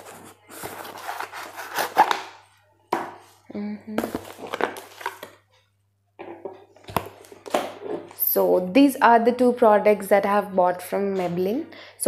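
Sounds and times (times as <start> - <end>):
cardboard package rustling: 0.0 - 2.3.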